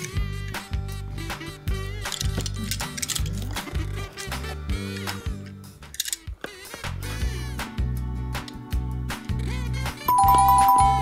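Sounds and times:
background music with beat: 4.0s - 11.0s
two-note ding-dong chime: 10.1s - 11.0s.

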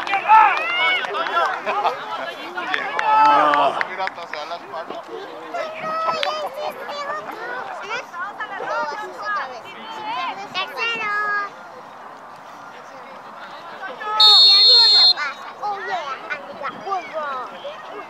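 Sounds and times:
spectators calling out: 14.0s - 15.4s
referee's whistle blast: 14.2s - 15.2s.

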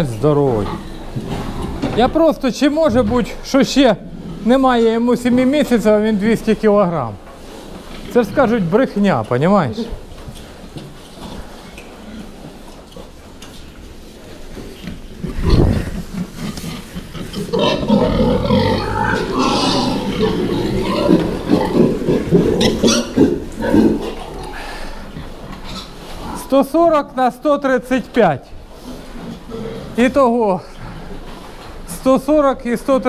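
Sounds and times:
pigs grunting: 14.7s - 26.7s, 28.8s - 31.4s.

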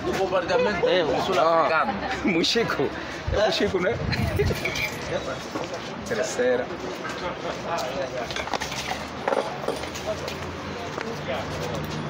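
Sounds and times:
group chatter: 0.0s - 12.0s.

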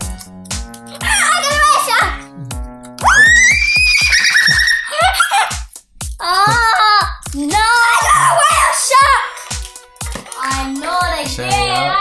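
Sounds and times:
instrumental music with steady beat: 0.0s - 12.0s
child squealing excitedly: 3.0s - 5.6s, 6.2s - 9.2s.

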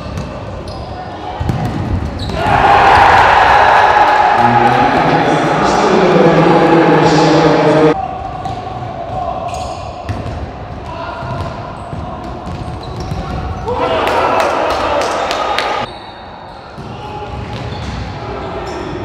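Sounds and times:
ball kicked and bouncing on court: 1.4s - 2.4s, 10.0s - 13.6s
players shouting: 2.2s - 9.6s, 13.6s - 15.9s.

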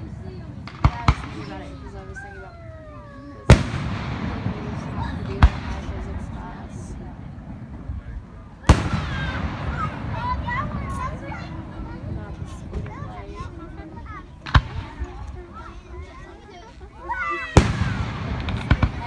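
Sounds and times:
fireworks bursting with bangs: 0.0s - 16.5s, 17.3s - 19.0s.

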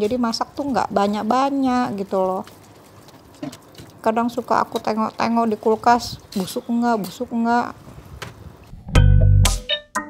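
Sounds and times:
guitar and bass music: 8.7s - 10.0s.

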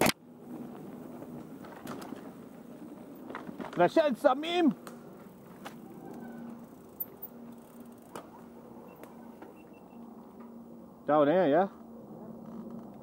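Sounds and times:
bike tyres and drivetrain humming: 0.0s - 13.0s
bike knocking over bumps: 1.3s - 4.0s.

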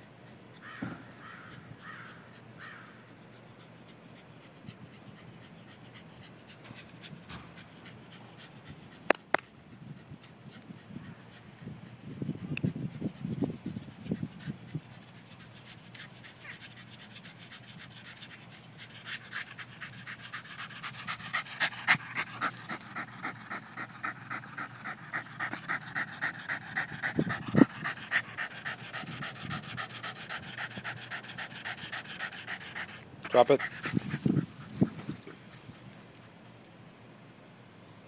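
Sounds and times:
dog panting hard: 1.4s - 36.6s.

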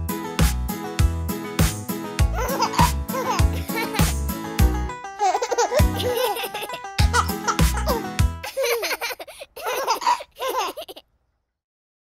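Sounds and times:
cartoon toddlers giggling: 2.4s - 4.2s, 5.2s - 11.0s.

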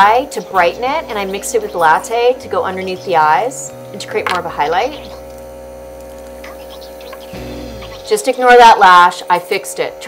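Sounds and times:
steady hum of held tones: 0.0s - 10.0s.

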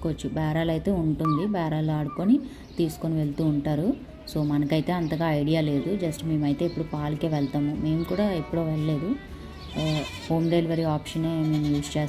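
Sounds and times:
goats bleating: 9.4s - 10.5s, 11.2s - 12.0s.

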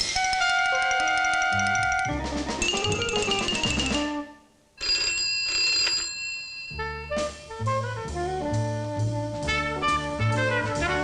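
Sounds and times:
music: 0.0s - 4.6s, 6.7s - 11.0s
desk telephone ringing: 0.7s - 4.2s, 4.8s - 7.2s.

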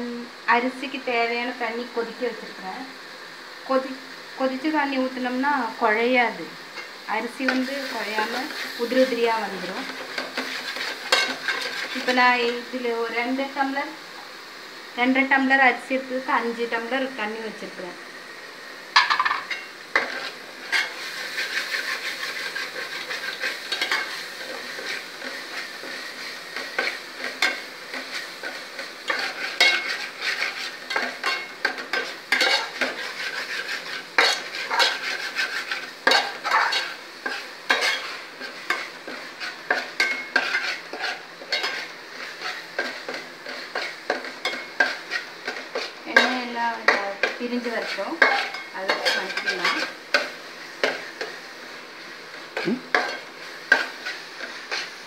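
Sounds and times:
frying hiss: 0.0s - 55.0s
spoon scraping metal pot: 29.1s - 38.1s, 39.4s - 41.8s.

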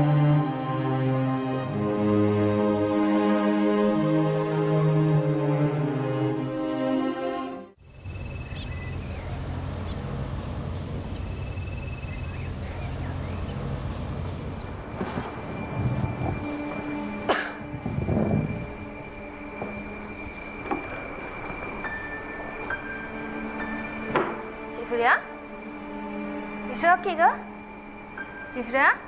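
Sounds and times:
held background music notes: 0.0s - 10.0s, 11.1s - 29.0s
steady low rumble: 8.0s - 21.8s.

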